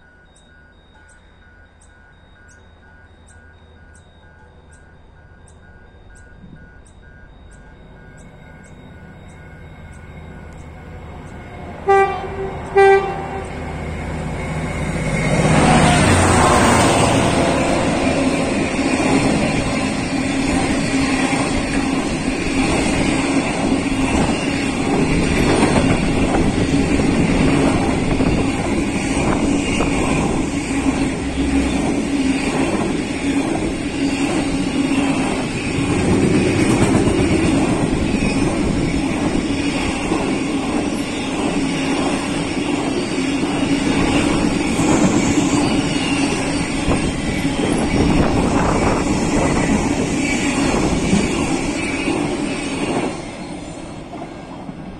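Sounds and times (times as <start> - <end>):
freight train rolling past: 0.0 - 54.9.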